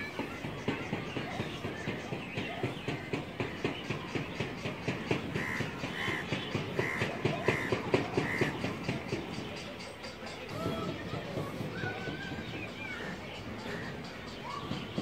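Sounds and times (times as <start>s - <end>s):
bird calling: 0.0s - 15.0s
quick irregular taps: 0.0s - 15.0s.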